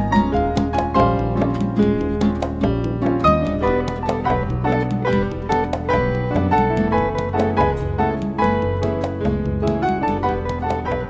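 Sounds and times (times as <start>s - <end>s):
acoustic guitar and piano music: 0.0s - 11.0s.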